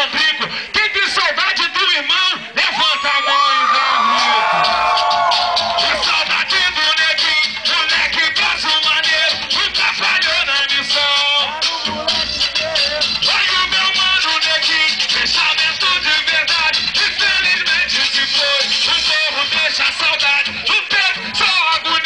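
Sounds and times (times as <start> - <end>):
funk music with voice: 0.0 - 22.0.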